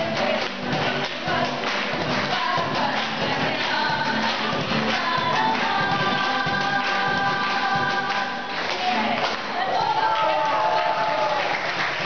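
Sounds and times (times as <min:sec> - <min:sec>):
strummed guitars: 0:00.0 - 0:09.8
women singing in chorus: 0:00.0 - 0:10.1
cajon percussion: 0:00.0 - 0:10.2.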